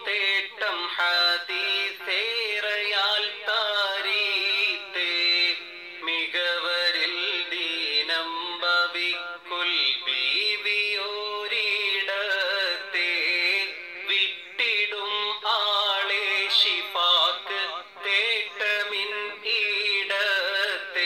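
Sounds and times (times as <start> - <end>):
person singing devotional song: 0.0 - 21.0.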